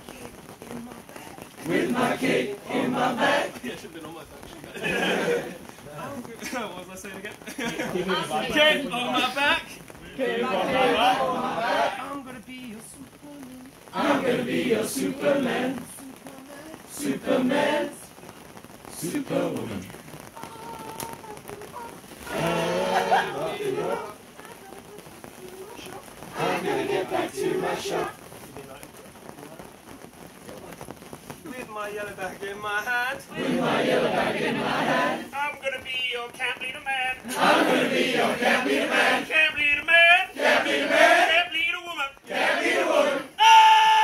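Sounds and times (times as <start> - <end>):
rain on a canvas canopy: 0.0 - 44.0
voices murmuring: 0.3 - 12.3, 13.0 - 18.0, 18.9 - 28.9
group chanting call-and-response: 1.6 - 3.9, 4.8 - 5.7, 7.9 - 9.2, 10.0 - 12.1, 13.9 - 16.0, 16.9 - 18.1, 18.9 - 20.0, 22.2 - 24.2, 26.3 - 28.2, 33.2 - 35.4, 37.2 - 39.6, 40.2 - 41.5, 42.2 - 44.0.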